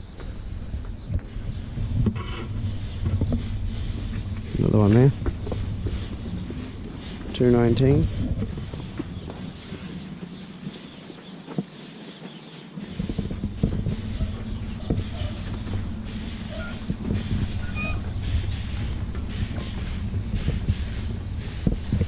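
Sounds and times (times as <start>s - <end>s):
hooves knocking on concrete: 0.0s - 22.0s
steady low hum: 0.0s - 22.0s.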